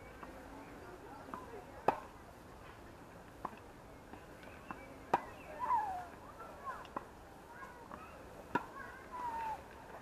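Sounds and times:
tennis ball struck by racket: 1.3 - 2.1, 4.7 - 5.4, 7.9 - 8.8.

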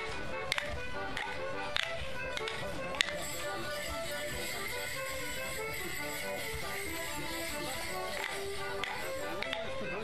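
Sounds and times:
fiddle and squeezebox dance tune: 0.0 - 10.0
wooden sticks clashing: 8.2 - 9.7.

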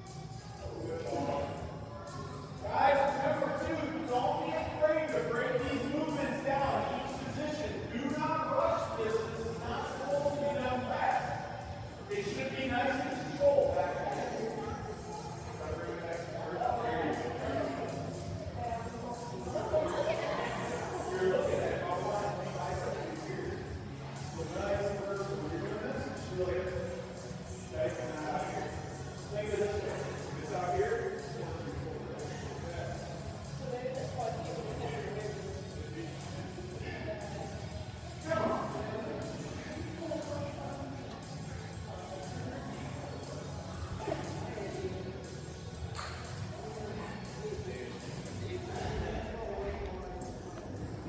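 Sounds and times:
indistinct voices talking: 0.0 - 51.0.

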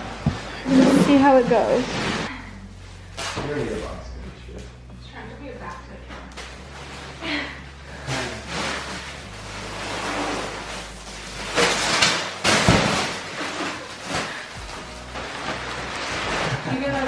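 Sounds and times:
plastic wrapping crinkling and tearing: 6.3 - 17.0.

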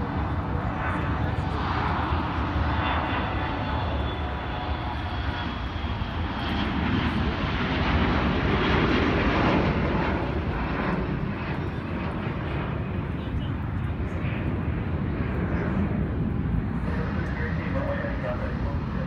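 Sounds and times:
jet engines rushing: 0.0 - 19.0.

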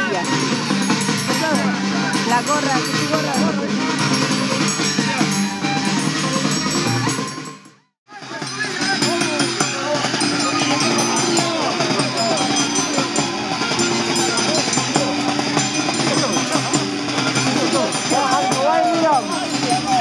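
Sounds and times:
crowd talking and calling: 0.0 - 20.0.

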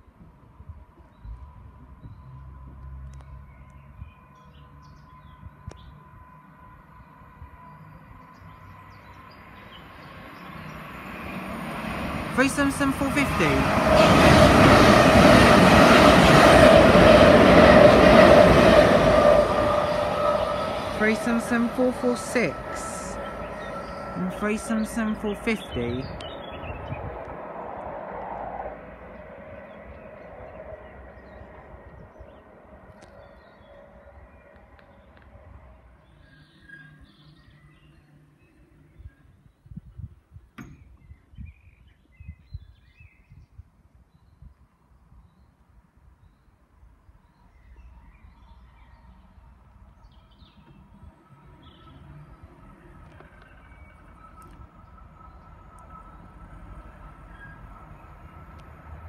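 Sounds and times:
birds chirping: 6.9 - 13.9, 17.6 - 27.1.

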